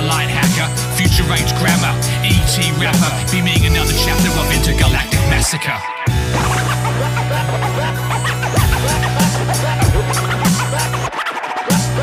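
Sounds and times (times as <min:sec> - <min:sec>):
hip hop beat: 0:00.0 - 0:12.0
turntable scratching: 0:00.0 - 0:12.0.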